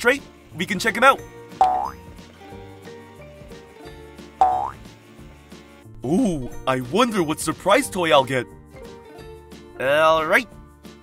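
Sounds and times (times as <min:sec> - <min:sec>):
cheerful background music: 0:00.0 - 0:11.0.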